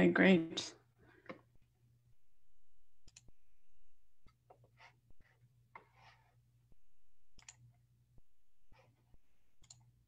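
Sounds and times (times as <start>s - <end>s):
faint clicks: 3.0s - 3.3s, 7.3s - 7.6s, 9.6s - 9.9s
low hum: 6.6s - 9.9s.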